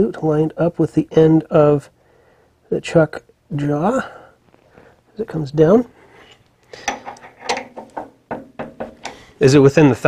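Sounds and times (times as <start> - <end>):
mill quill feed clicks and knocks: 6.8 - 9.2.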